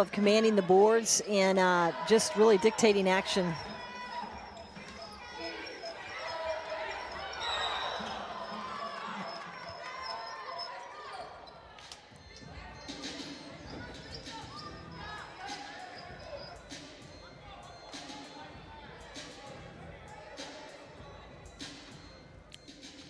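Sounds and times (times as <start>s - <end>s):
echoing voices: 0.0s - 22.2s
sneaker squeaks: 3.6s - 18.6s.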